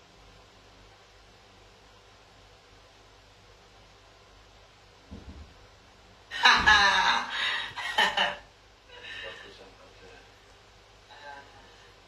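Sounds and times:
woman laughing: 6.3 - 8.4
faint vocal sounds: 11.0 - 12.0.

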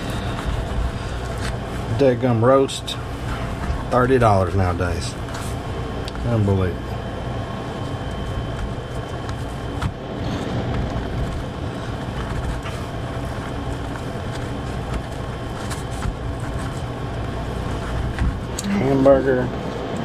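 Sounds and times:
fan whirring: 0.0 - 20.0
low hum: 0.0 - 20.0.

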